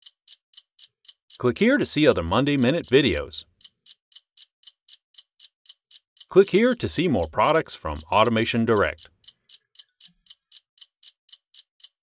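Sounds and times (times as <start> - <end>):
stopwatch ticking: 0.0 - 12.0.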